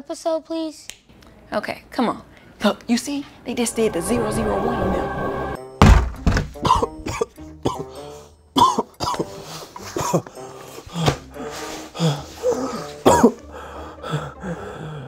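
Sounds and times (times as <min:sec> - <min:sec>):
background music: 0:03.4 - 0:15.0
man grunting and coughing: 0:06.6 - 0:10.3, 0:12.0 - 0:13.5
scuffling on a bed: 0:10.6 - 0:12.8.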